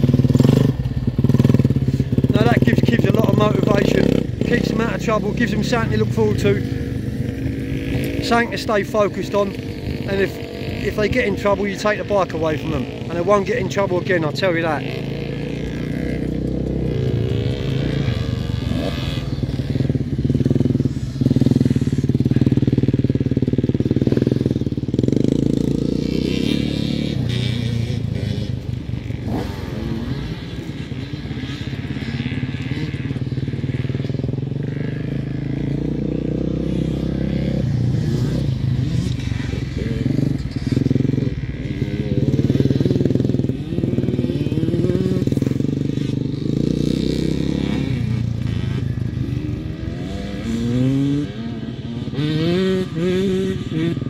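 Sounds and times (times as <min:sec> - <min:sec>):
motocross bike engines revving: 0:00.0 - 0:54.0.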